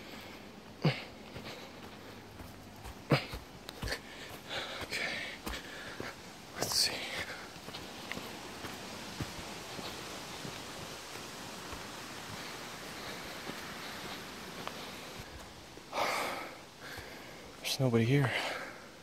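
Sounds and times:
breathy rush of noise: 0.0 - 17.7.

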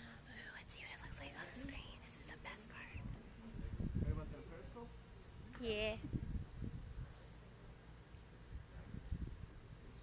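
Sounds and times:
woman whispering: 0.0 - 3.1.

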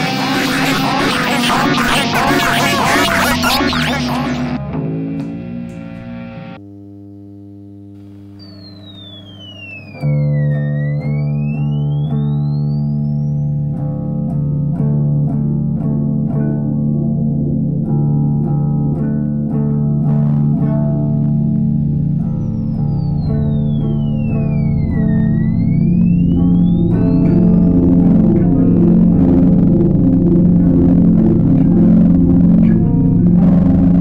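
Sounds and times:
sustained drone: 0.0 - 6.6, 8.0 - 34.0
sweeping tone: 0.0 - 6.6, 8.1 - 15.8, 19.9 - 34.0
distorted guitar and bass riffing: 0.0 - 6.7, 7.4 - 34.0.

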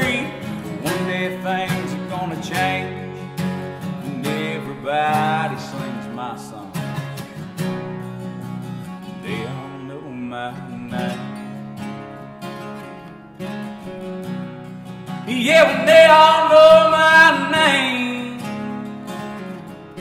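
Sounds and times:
man singing: 0.0 - 7.1, 9.2 - 11.8, 15.2 - 19.2
acoustic guitars strumming: 0.0 - 20.0.

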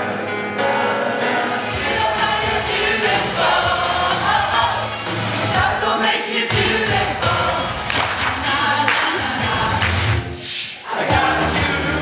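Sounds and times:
choir singing: 0.0 - 12.0
musical accompaniment: 0.0 - 12.0.

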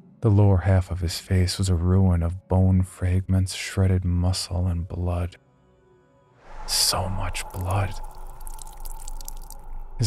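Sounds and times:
liquid dripping: 7.2 - 10.0.

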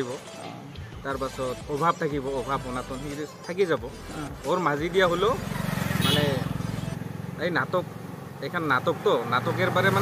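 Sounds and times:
motorcycle engine passing: 5.1 - 10.0.

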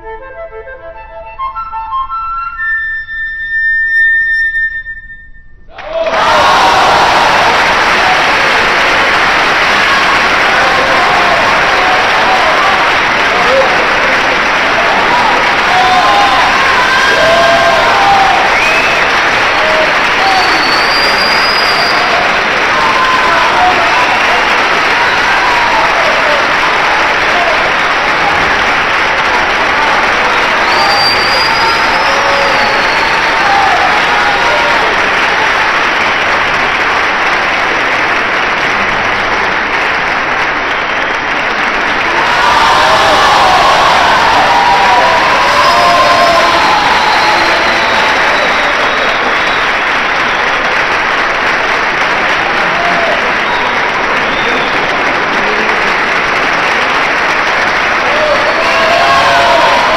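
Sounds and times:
short high whistle: 2.1 - 5.7, 20.4 - 22.2, 30.6 - 33.2
audience applauding: 5.7 - 59.9.

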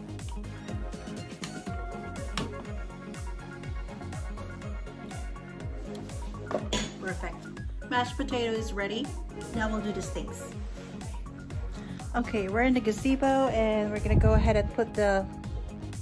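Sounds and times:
background music with bass beat: 0.0 - 16.0.

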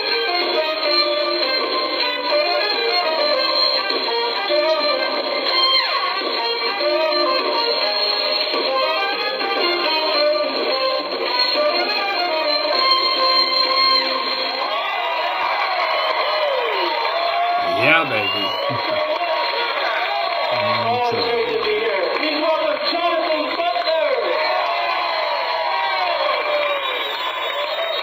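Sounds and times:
guitar: 0.0 - 14.8, 15.4 - 28.0.

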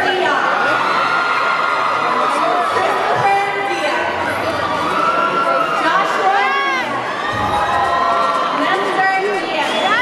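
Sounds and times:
audience cheering and shouting: 0.0 - 10.0.

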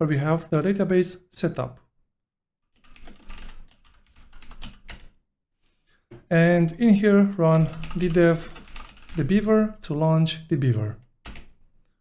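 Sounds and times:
typing on computer keyboard: 2.8 - 5.1, 7.6 - 9.3, 11.2 - 11.6.

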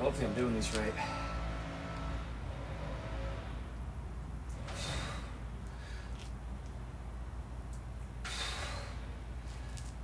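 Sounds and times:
man's forceful breath: 4.6 - 6.2, 8.2 - 9.8.

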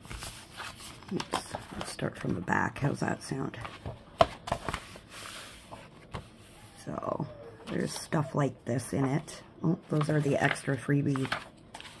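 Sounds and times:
paper rustling: 0.0 - 2.3, 3.6 - 6.8, 9.8 - 12.0
book pages turning: 0.0 - 2.4, 3.6 - 6.8, 9.8 - 12.0.

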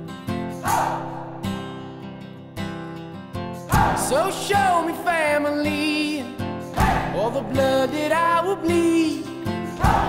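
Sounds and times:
acoustic guitar strumming: 0.0 - 10.0
person singing: 3.7 - 10.0.

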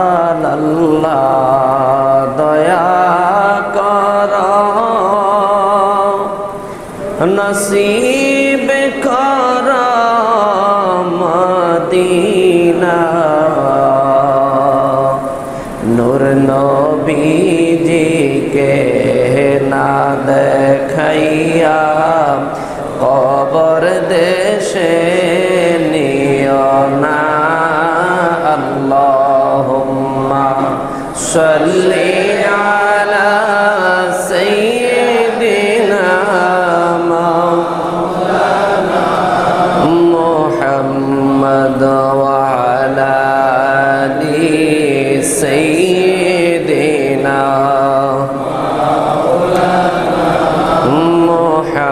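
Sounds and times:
man chanting melodically: 0.0 - 51.9.

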